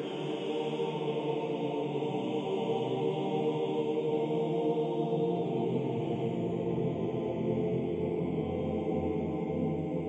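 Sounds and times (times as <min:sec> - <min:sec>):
choral chant: 0:00.0 - 0:10.0.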